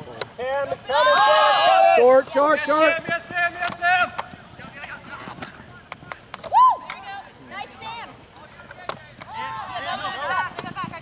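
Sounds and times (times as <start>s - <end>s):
players calling out: 0.2s - 10.7s
loud short shout: 6.5s - 6.9s.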